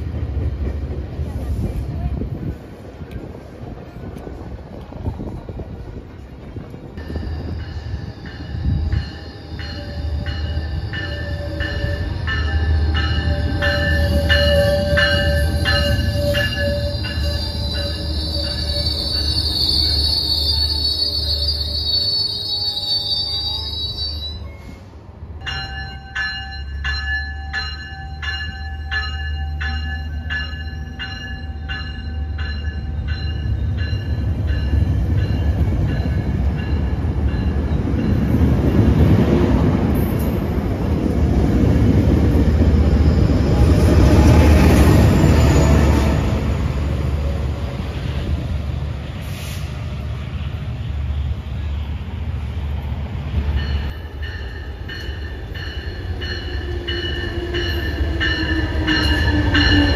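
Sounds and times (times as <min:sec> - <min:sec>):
train rumble: 0:00.0 - 0:59.9
wheel squeal: 0:07.0 - 0:24.8
train bell ringing: 0:07.0 - 0:39.2, 0:53.4 - 0:59.9.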